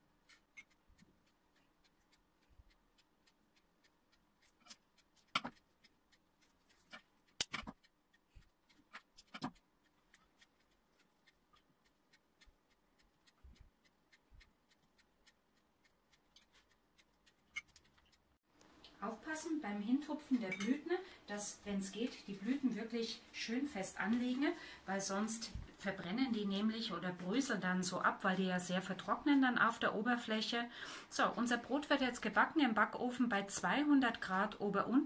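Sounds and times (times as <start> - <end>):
faint room hum: 0.0 - 35.0.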